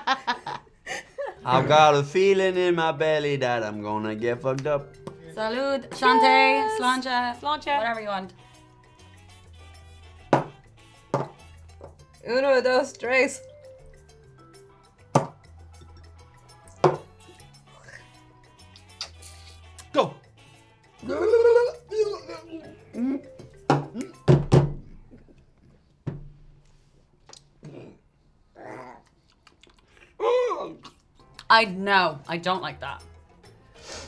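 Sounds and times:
quiet background music: 0:00.0 - 0:26.9, 0:29.7 - 0:34.0
shot glass knocking on table: 0:10.4 - 0:11.4, 0:16.8 - 0:17.1.

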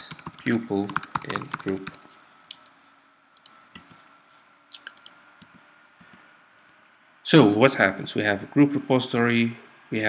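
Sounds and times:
computer keys clicking: 0:00.0 - 0:02.1, 0:03.4 - 0:04.0, 0:04.8 - 0:05.6.

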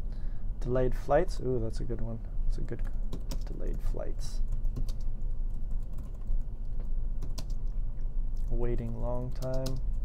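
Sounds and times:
computer keyboard key clicks: 0:09.3 - 0:09.9.

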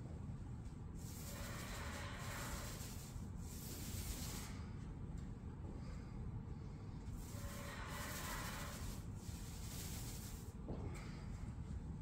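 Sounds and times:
paint sprayer hissing: 0:01.0 - 0:04.5, 0:07.2 - 0:10.5.

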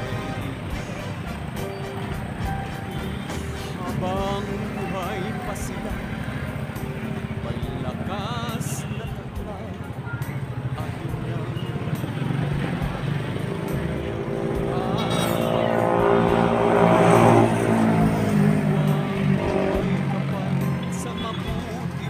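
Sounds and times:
vehicle engine passing: 0:00.0 - 0:22.0.

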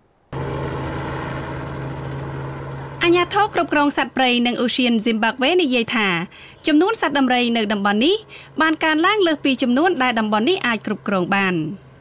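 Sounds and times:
helicopter engine and rotor drone: 0:00.3 - 0:12.0.

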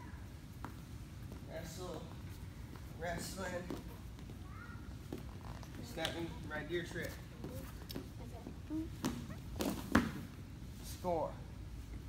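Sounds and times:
knocks and scuffs on mat: 0:07.1 - 0:10.3.

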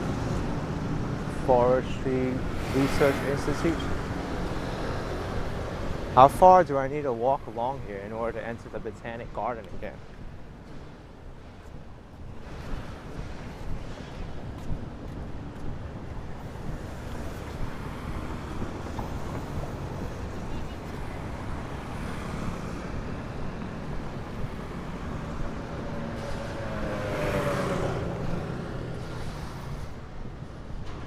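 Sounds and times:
passing cars and scooters: 0:00.0 - 0:31.0
vehicle passing close: 0:16.8 - 0:30.0.

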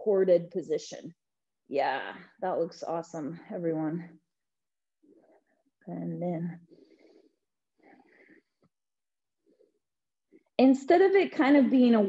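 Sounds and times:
woman breathing: 0:06.6 - 0:08.8.

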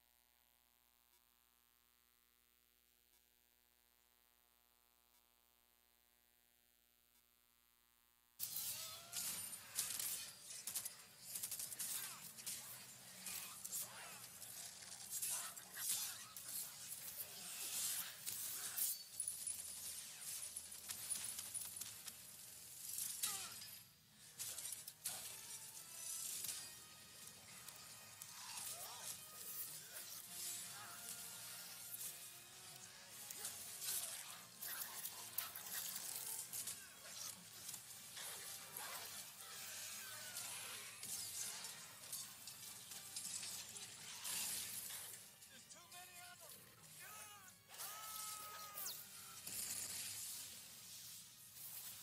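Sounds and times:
voice speaking or singing: 0:45.7 - 0:47.5
crash and shatter effects: 0:47.8 - 0:52.0.

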